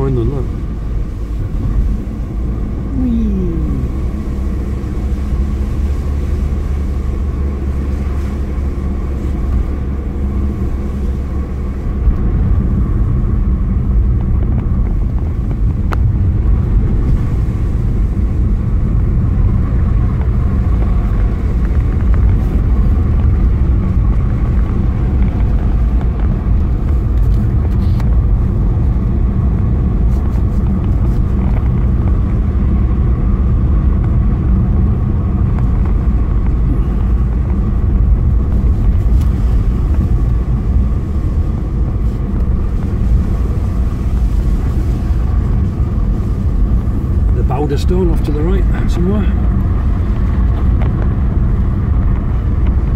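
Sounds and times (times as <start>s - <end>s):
car engine and road rumble: 0.0s - 52.9s.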